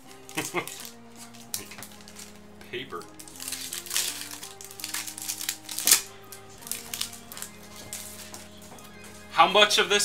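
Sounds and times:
wrapper tearing and crinkling: 0.0s - 9.3s
quiet background music: 0.0s - 10.0s.

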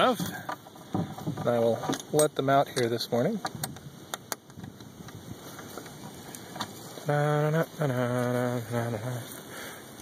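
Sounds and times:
faint handling noise: 0.0s - 10.0s.

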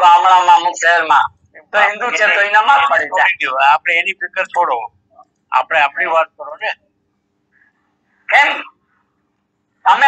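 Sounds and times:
person talking: 0.0s - 6.8s.

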